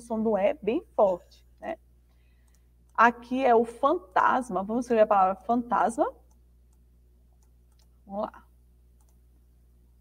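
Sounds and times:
low steady hum: 0:00.0 - 0:10.0
computer mouse clicks: 0:02.4 - 0:03.0, 0:06.2 - 0:08.0, 0:09.0 - 0:09.2.

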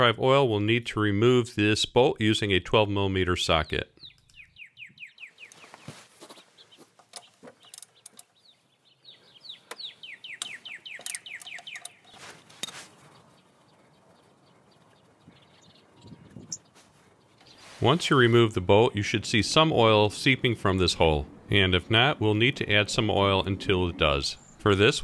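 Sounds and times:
bird chirping: 0:01.8 - 0:25.0
ratchet wrench clicking: 0:10.4 - 0:12.0.

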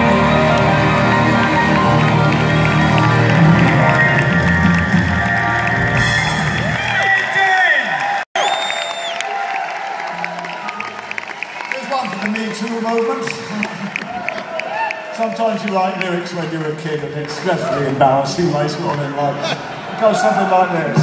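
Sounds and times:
live rock band playing: 0:00.0 - 0:07.0
crowd cheering: 0:00.0 - 0:21.0
loud whistle: 0:08.4 - 0:09.4.

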